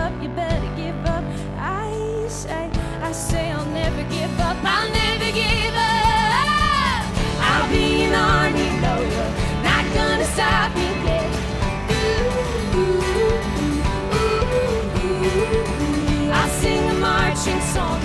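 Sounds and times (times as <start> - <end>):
live pop-folk band playing: 0.0 - 18.0
woman singing: 0.0 - 18.0.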